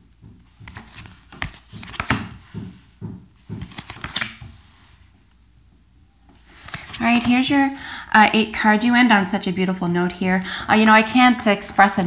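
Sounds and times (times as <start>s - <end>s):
cards tapping and sliding on wood: 0.5s - 4.6s.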